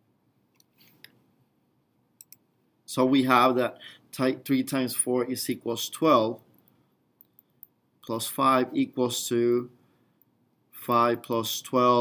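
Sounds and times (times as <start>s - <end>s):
man speaking: 2.9s - 6.5s, 8.0s - 9.8s, 10.8s - 12.0s.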